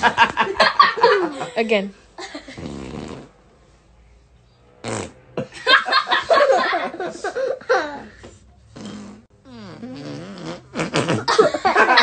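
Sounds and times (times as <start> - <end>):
child blowing a raspberry: 2.6 - 3.3, 8.7 - 11.4.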